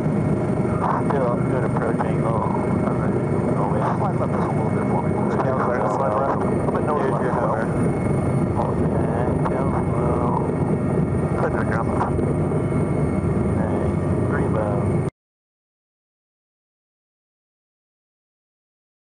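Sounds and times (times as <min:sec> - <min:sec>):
helicopter rotor and engine noise: 0:00.0 - 0:15.1
high turbine whine: 0:00.0 - 0:15.1.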